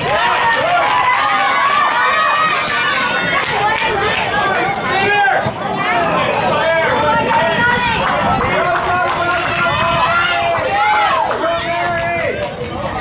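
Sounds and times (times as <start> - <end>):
spectators shouting: 0.0 - 13.0.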